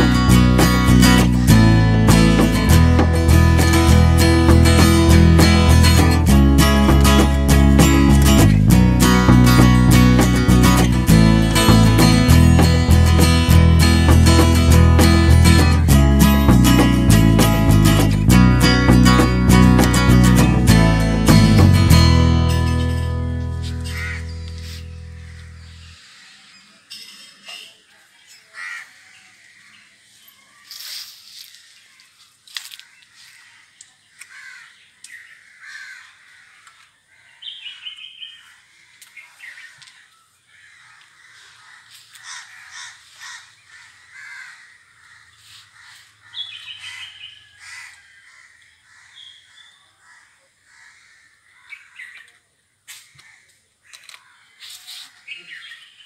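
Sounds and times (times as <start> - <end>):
acoustic guitar music: 0.0 - 26.0
birds calling: 0.0 - 52.4
hands working soil: 23.6 - 25.4.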